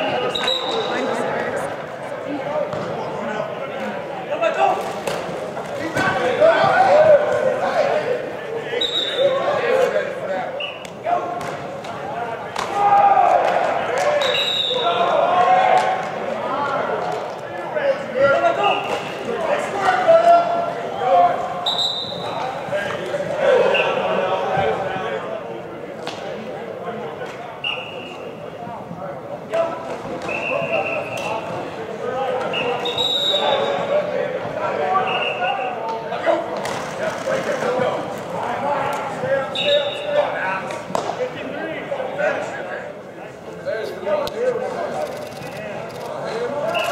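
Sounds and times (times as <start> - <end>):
people shouting: 12.6 - 15.9.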